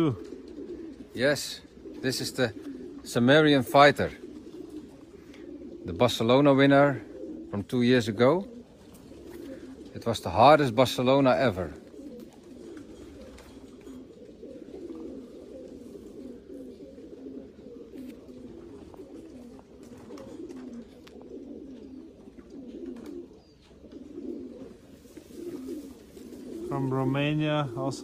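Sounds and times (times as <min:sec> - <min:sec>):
pigeons cooing: 0:00.0 - 0:28.0.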